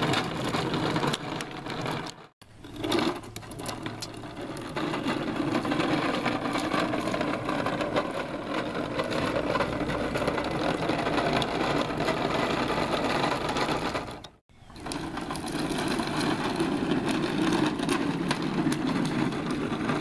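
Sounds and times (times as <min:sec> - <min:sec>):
toy truck rattling: 0:00.0 - 0:20.0.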